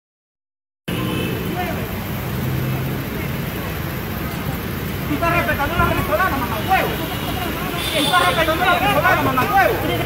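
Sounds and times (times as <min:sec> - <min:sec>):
vehicle engines running: 0:00.9 - 0:10.0.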